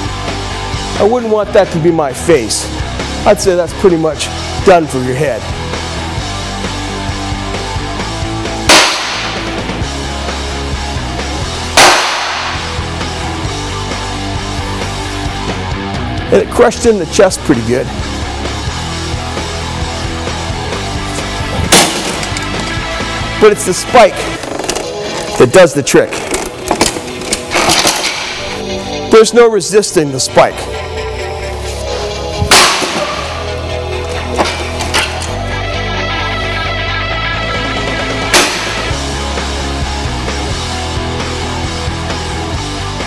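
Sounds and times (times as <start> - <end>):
rock music: 0.0 - 43.0
hammer striking steel armour: 8.7 - 9.6, 11.8 - 12.7, 21.7 - 22.4, 32.5 - 33.4, 38.3 - 39.0.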